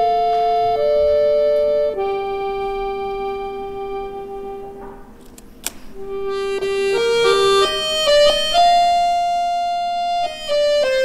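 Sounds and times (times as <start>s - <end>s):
button accordion sustained note: 0.0s - 11.0s.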